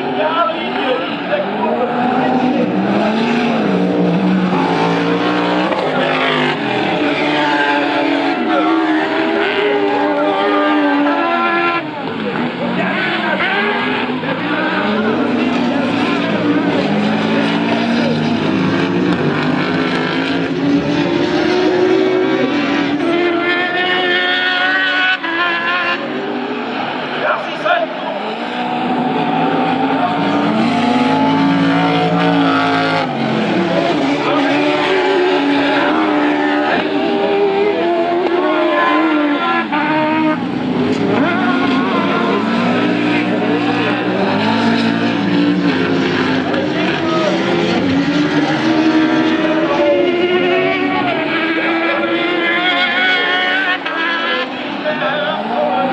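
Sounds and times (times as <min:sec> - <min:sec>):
racing car engines revving: 0:00.0 - 0:55.9.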